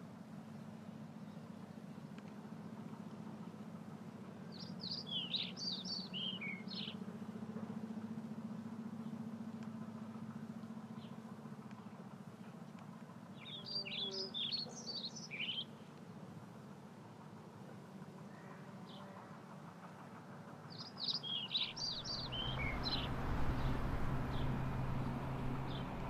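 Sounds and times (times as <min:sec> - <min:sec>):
steady low hum: 0:00.0 - 0:26.0
songbird chirping: 0:00.4 - 0:16.1, 0:20.7 - 0:26.0.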